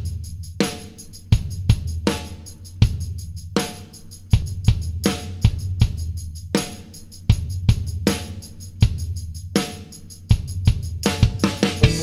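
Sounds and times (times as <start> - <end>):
drum kit beat: 0.0 - 12.0.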